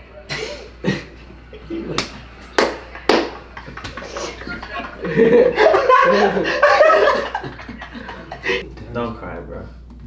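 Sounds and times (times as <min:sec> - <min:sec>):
young men laughing: 0:02.9 - 0:08.6.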